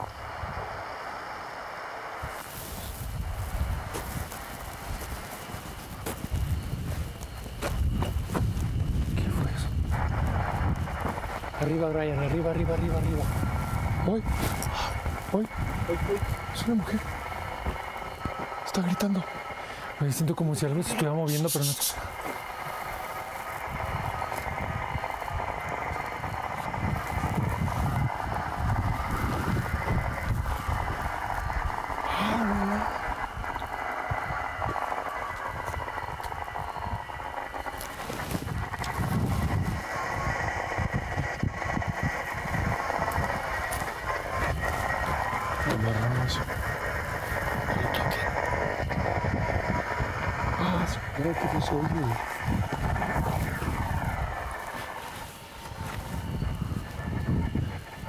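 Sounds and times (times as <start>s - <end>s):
irregular low rumble: 0.0s - 58.0s
steady droning background: 0.0s - 58.0s
indistinct low voices: 8.3s - 58.0s.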